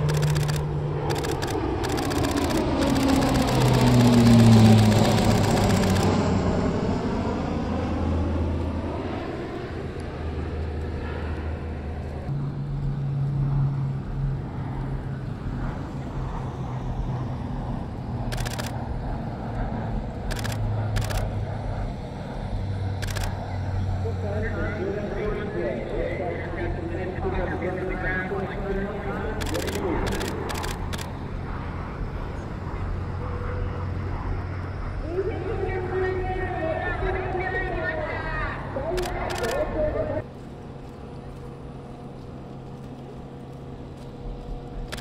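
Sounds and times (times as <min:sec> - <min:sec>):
propeller aircraft drone: 0:00.0 - 0:45.0.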